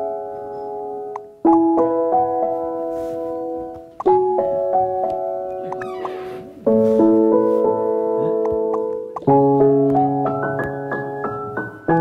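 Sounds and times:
soft electric piano chords: 0:00.0 - 0:12.0.

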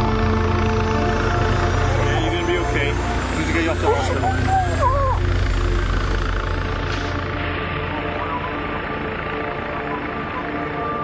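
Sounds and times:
low steady rumble: 0:00.0 - 0:10.9
music with sustained tones: 0:00.0 - 0:11.0.

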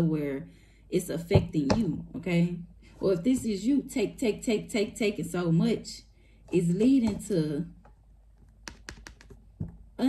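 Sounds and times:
cards clicking and tapping: 0:08.4 - 0:09.8.

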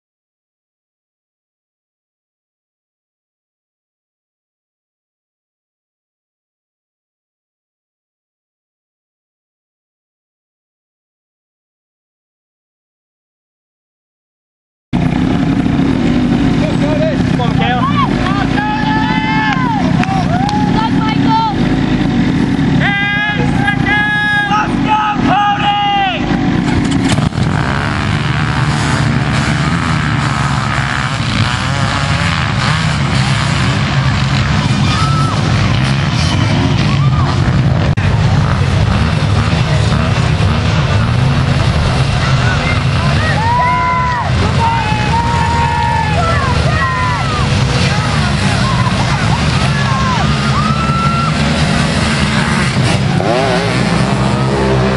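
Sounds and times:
quad engines idling: 0:15.0 - 0:54.9
people's voices: 0:16.3 - 0:26.9, 0:32.5 - 0:54.9.

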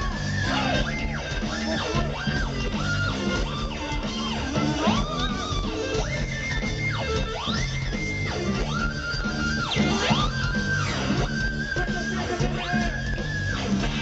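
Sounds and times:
distorted electric guitar sliding: 0:00.0 - 0:14.0
live heavy rock band: 0:00.0 - 0:14.0.

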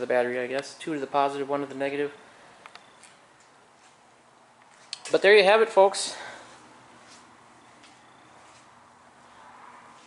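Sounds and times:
soft clicks: 0:02.6 - 0:03.6.

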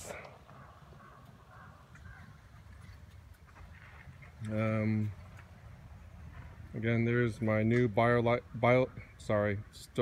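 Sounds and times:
faint distant sounds: 0:00.0 - 0:10.0.

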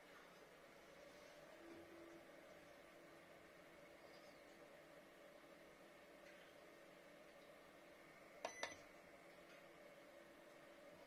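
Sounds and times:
faint steady hum: 0:00.0 - 0:11.0
electronic beeps: 0:08.5 - 0:08.8.

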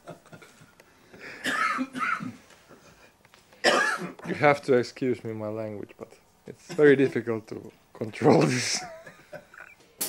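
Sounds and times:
person coughing: 0:01.4 - 0:02.4, 0:03.6 - 0:04.4.

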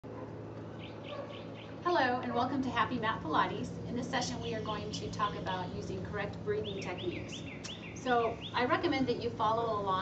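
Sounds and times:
steady low hum: 0:00.0 - 0:10.0
bird chirping: 0:00.8 - 0:01.8, 0:06.6 - 0:08.8.

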